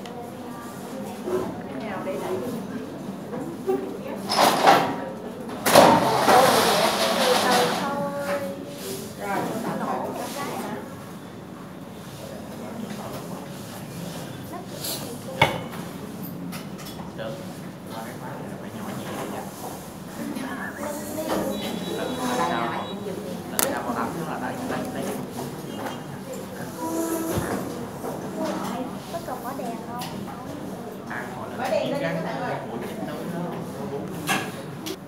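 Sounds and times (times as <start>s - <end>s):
murmur of people talking: 0.0s - 35.0s
loud sliding noise: 5.8s - 8.0s.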